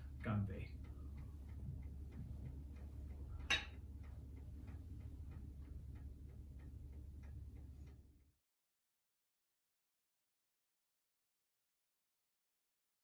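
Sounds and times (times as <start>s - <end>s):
low room hum: 0.0s - 8.4s
mechanical clock ticking: 0.0s - 8.4s.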